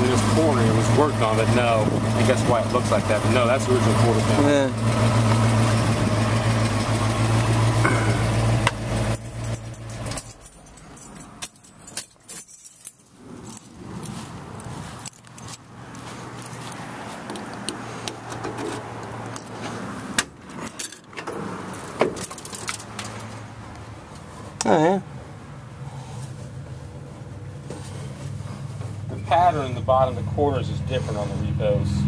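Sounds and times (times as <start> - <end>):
low engine-like hum: 0.0 - 12.1, 22.2 - 32.0
metallic clicks and jingles: 9.1 - 16.8.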